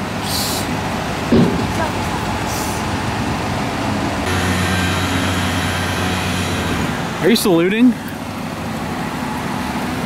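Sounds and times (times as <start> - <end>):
truck engine and hydraulics hum: 0.0 - 10.0
hiss: 0.2 - 0.7.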